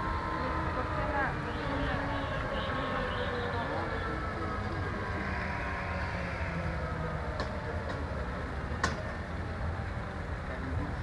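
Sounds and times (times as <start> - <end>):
helicopter turbines winding down: 3.7 - 8.8.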